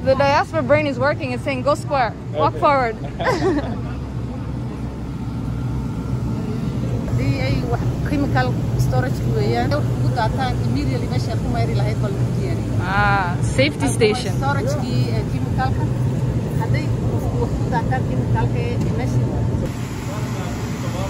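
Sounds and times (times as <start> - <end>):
woman speaking: 0.0 - 3.0, 7.1 - 16.0, 16.6 - 19.5
steady low hum: 0.0 - 21.0
woman laughing: 2.9 - 3.9.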